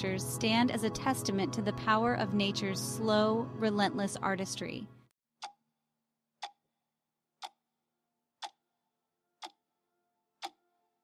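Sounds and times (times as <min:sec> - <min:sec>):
clock ticking: 0:06.4 - 0:06.6, 0:07.4 - 0:07.6, 0:08.4 - 0:08.6.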